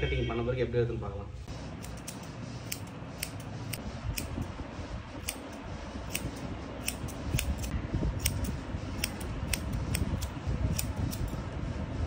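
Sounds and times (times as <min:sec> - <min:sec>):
low background rumble: 0:01.4 - 0:12.0
scissors snipping hair: 0:01.8 - 0:04.3, 0:05.2 - 0:11.4.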